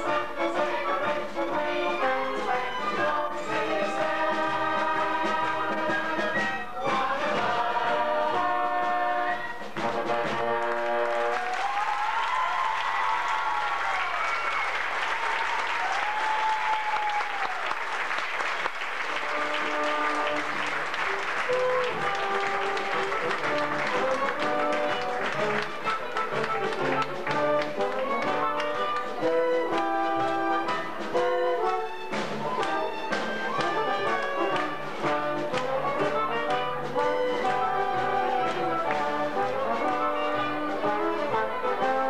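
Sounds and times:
instrumental theatre music: 0.0s - 42.0s.

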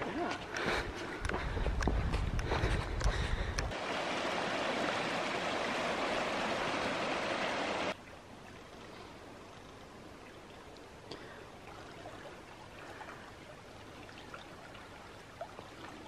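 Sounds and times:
creek rushing over stones: 3.7s - 8.0s.

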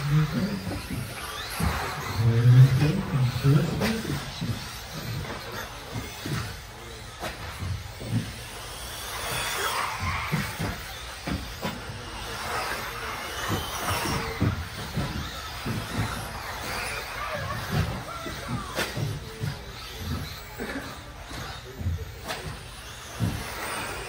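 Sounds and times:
electric motor and gear whine: 0.0s - 24.0s
rc cars landing on track: 0.0s - 24.0s.

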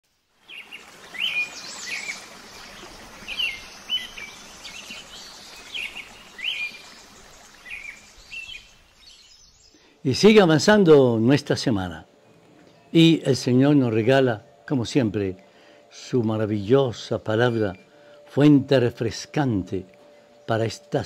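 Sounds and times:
steady background hiss: 0.1s - 21.0s
birds chirping: 0.4s - 21.0s.

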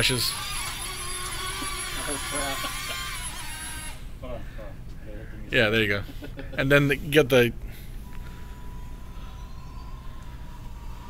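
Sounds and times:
toy drone motors whining: 0.0s - 4.1s, 8.0s - 11.0s.

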